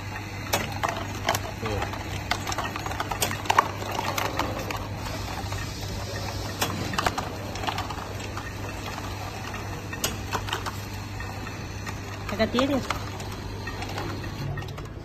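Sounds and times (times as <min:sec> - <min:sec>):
counting machine humming: 0:00.0 - 0:15.0
candies dropping into plastic cups: 0:00.6 - 0:05.0.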